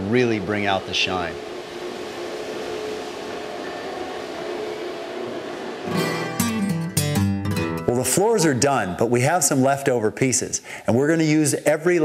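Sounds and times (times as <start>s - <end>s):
mechanical hum: 0.0s - 12.0s
hiss: 0.4s - 5.9s.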